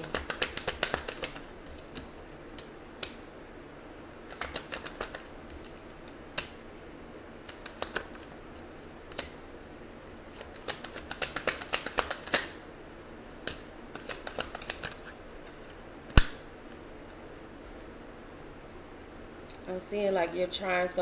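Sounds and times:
cards clicking and snapping: 0.0s - 3.2s, 4.3s - 6.6s, 7.4s - 9.4s, 10.3s - 12.6s, 13.4s - 16.4s.

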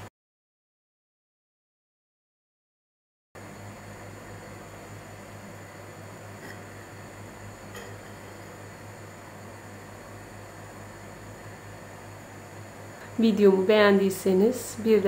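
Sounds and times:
hiss with electrical hum: 3.4s - 15.0s.

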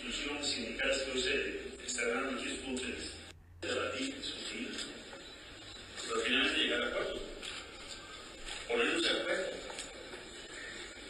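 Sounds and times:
man speaking: 0.0s - 5.0s, 6.0s - 7.5s, 8.7s - 9.8s.

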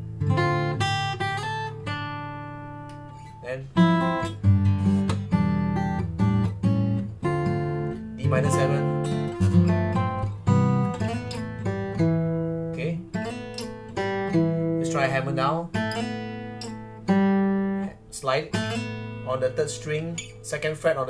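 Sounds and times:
acoustic guitar chords: 0.0s - 21.0s.

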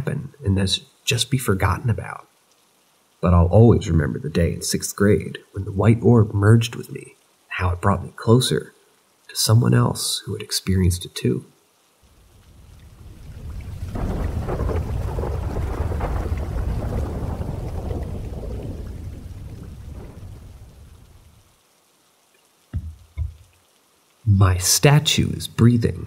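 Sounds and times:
rolling thunder: 12.6s - 21.4s.

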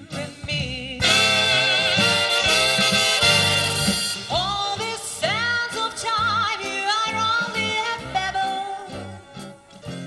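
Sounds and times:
orchestra playing gospel song: 0.0s - 10.0s.

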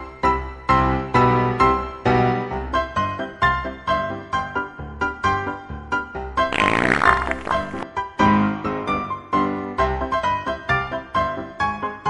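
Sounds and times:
bouncy keyboard music: 6.5s - 7.8s
comic fart sound effect: 6.5s - 7.9s.

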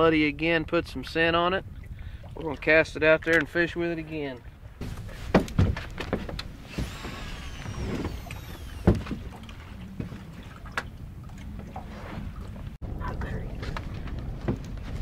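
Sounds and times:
wind: 0.0s - 15.0s
fishing reel whirring: 6.8s - 9.4s.

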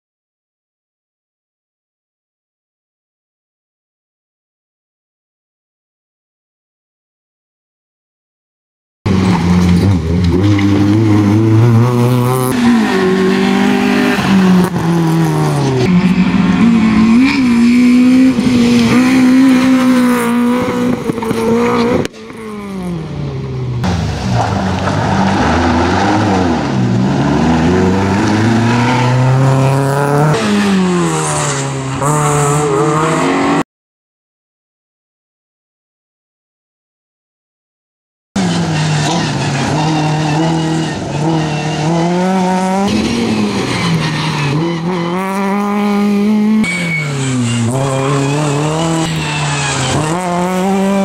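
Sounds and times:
rally car engine revving: 9.1s - 33.6s, 38.4s - 51.0s.

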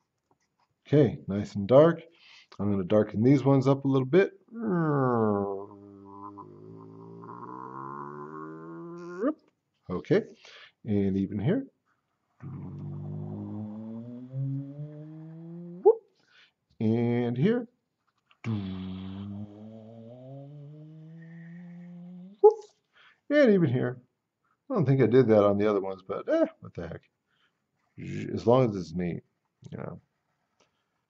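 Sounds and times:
man humming low: 4.6s - 9.3s, 12.4s - 15.9s, 18.5s - 22.3s.

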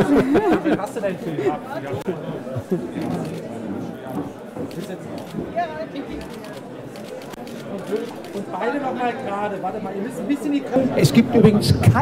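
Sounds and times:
murmur of many voices: 0.0s - 12.0s.

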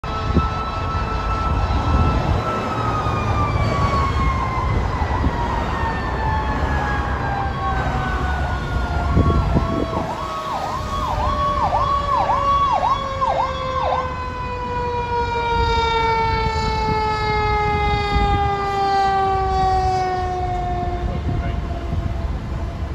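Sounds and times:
siren sweeping rapidly: 0.0s - 22.9s.

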